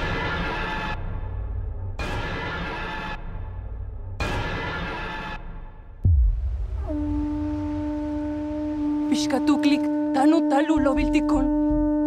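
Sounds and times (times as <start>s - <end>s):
low rumble: 6.0s - 10.1s
conch shell trumpet note: 6.8s - 12.0s.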